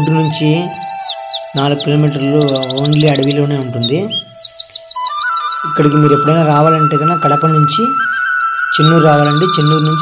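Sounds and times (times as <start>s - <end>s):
person speaking: 0.0s - 4.4s, 5.5s - 10.0s
background music held tone: 0.0s - 10.0s
bird chirping: 0.0s - 10.0s.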